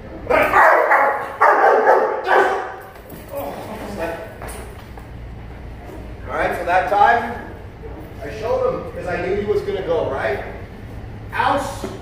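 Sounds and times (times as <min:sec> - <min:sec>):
dog barking: 0:00.3 - 0:02.8.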